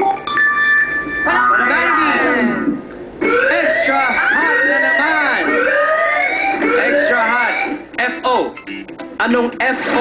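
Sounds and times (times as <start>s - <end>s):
rising siren-like sweeps: 0.5s - 7.8s.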